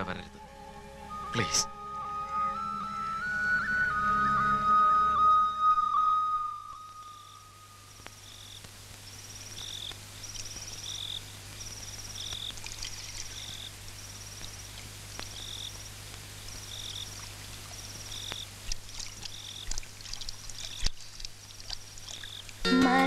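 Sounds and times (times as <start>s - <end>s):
low steady hum: 0.0s - 23.0s
held flute note: 1.0s - 7.8s
insects chirping: 3.0s - 23.0s.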